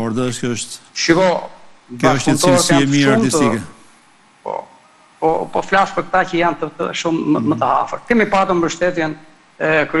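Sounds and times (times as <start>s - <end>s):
man talking: 0.0s - 3.8s.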